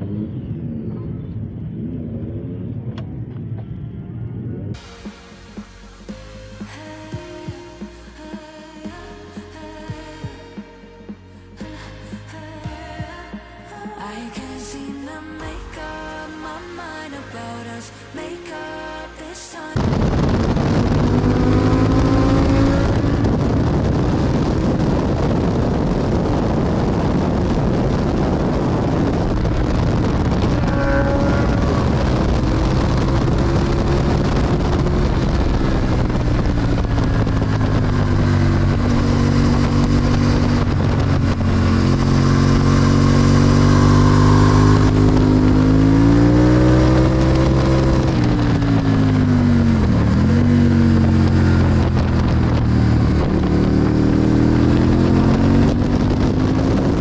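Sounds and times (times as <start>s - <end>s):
motorcycle engine revving: 0.0s - 5.0s, 19.8s - 57.0s
wind rushing: 19.8s - 57.0s.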